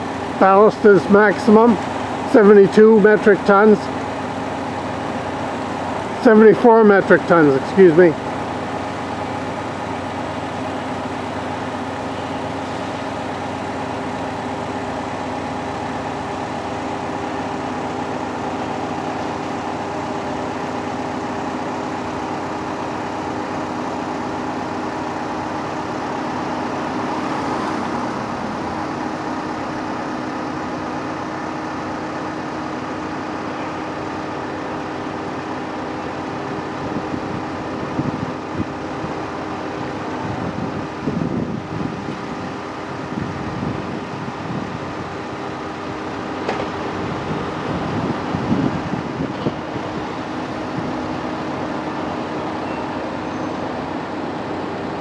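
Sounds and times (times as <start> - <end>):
crane diesel engine running: 0.0 - 55.0.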